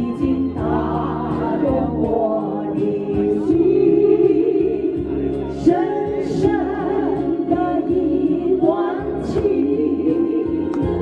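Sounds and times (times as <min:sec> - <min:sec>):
women singing through microphones: 0:00.0 - 0:11.0.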